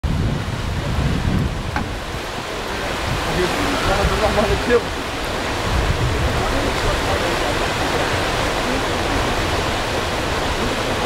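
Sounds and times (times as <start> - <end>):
whitewater rapids roaring: 0.2 - 11.0.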